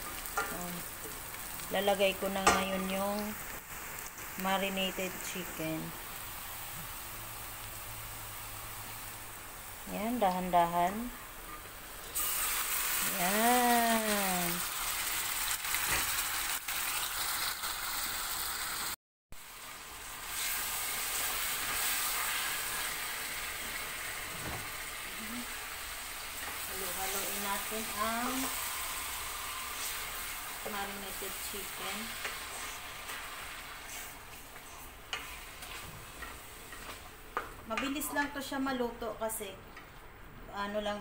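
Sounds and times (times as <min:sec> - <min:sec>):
chicken sizzling in a pot: 0:00.0 - 0:37.7
spatula stirring in a pot: 0:26.3 - 0:37.9.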